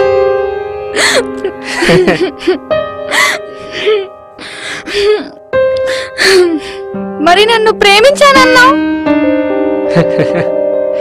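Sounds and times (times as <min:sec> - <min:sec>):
held notes of background music: 0:00.0 - 0:11.0
woman crying and sobbing: 0:01.0 - 0:06.9.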